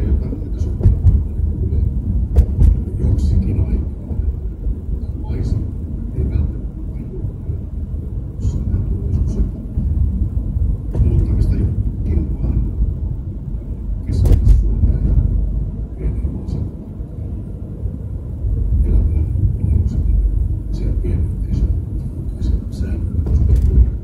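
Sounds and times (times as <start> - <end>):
road and tyre rumble in car: 0.0 - 24.0
short sharp knocks: 2.4 - 2.8.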